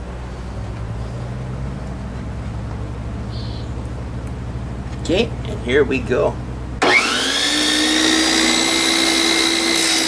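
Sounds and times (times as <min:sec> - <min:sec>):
faint high chirp: 0:03.3 - 0:03.9
tile saw running: 0:06.8 - 0:10.0.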